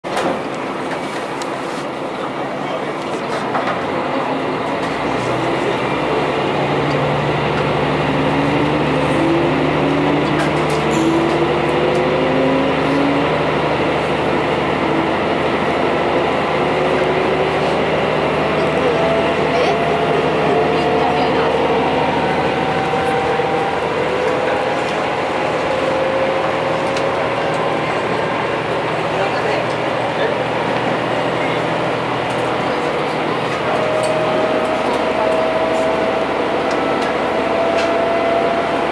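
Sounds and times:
diesel railcar engine under load: 0.0s - 38.9s
whine rising in pitch: 5.1s - 38.9s.

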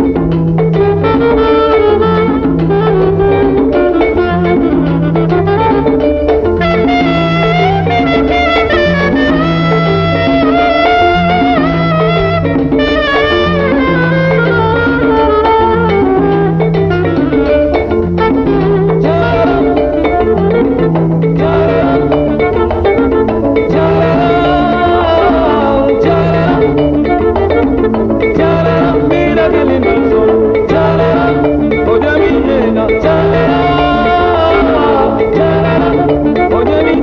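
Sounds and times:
plucked guitar lines: 0.0s - 37.0s
salsa band playing: 0.0s - 37.0s
steady bass line: 0.0s - 37.0s.

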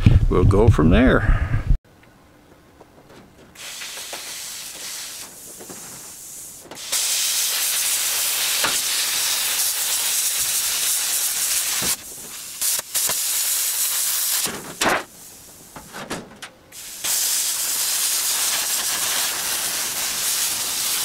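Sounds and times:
cutting torch hissing: 3.6s - 15.8s, 16.8s - 21.0s.

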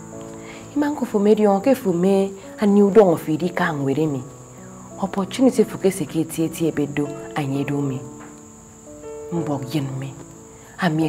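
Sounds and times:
crickets chirring: 0.0s - 11.0s
woman talking: 0.7s - 4.3s, 5.0s - 8.1s, 9.3s - 11.0s.

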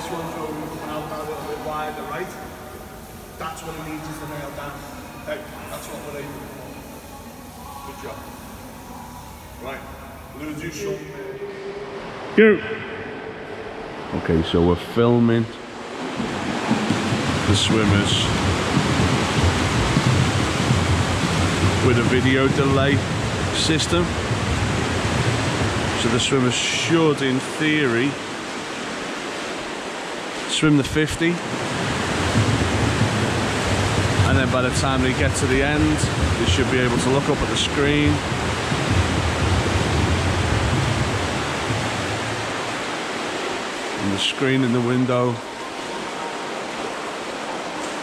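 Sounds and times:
indoor pool hall rushing noise: 0.0s - 48.0s
water churned by swimmers: 0.0s - 48.0s.

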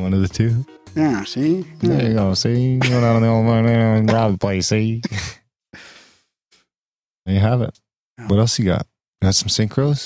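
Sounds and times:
man speaking: 0.0s - 5.4s, 7.3s - 10.0s
breathy sigh: 5.1s - 6.3s.

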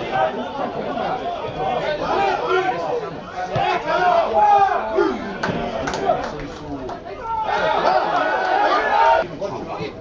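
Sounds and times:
men shouting: 3.6s - 5.4s, 7.2s - 9.2s.

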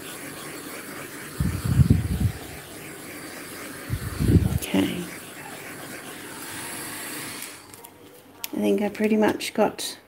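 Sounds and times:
torch flame hissing: 0.0s - 7.8s.

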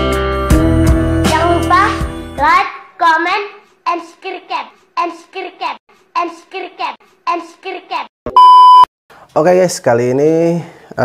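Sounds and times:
child chanting: 1.3s - 8.1s
loud steady beep tone: 8.3s - 8.9s.

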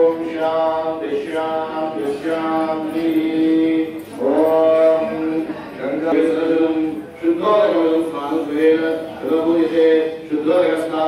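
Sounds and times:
person chanting a mantra: 0.0s - 11.0s.

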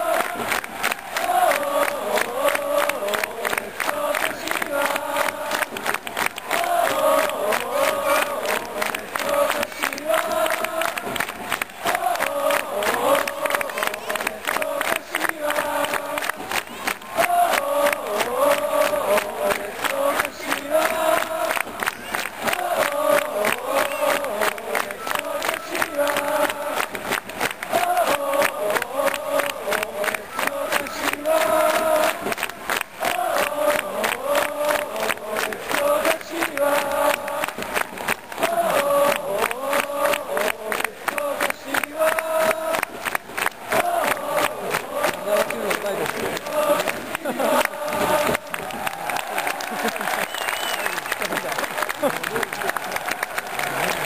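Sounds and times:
crowd chanting in unison: 0.0s - 54.0s
rhythmic hand clapping: 0.0s - 54.0s.

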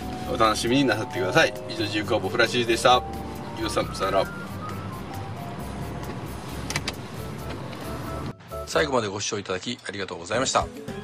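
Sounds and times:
car road and engine rumble: 0.0s - 8.7s
quiet background music: 0.0s - 11.0s.

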